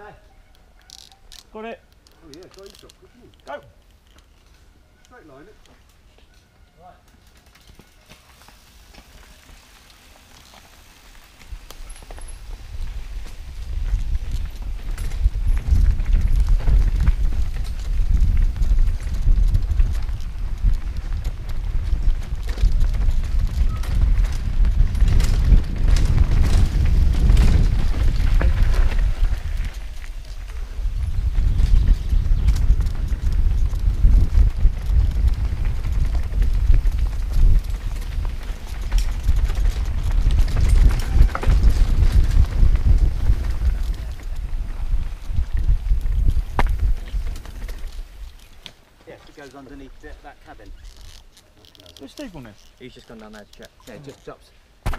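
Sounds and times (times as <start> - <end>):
wind buffeting microphone: 11.5 - 48.6.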